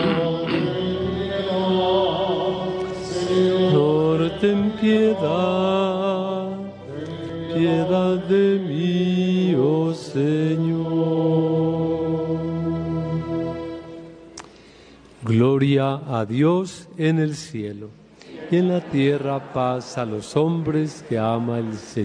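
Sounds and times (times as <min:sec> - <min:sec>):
voice singing liturgical chant: 0:00.0 - 0:14.3, 0:15.2 - 0:22.0.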